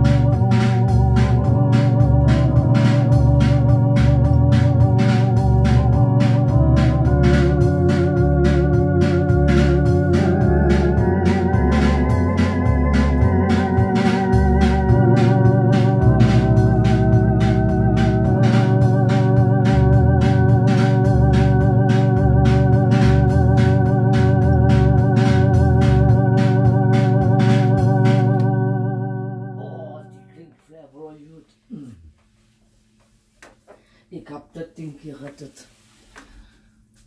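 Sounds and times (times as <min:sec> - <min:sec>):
electronic organ chords and bass: 0:00.0 - 0:30.6
organ rhythm unit ticking beat: 0:00.0 - 0:30.6.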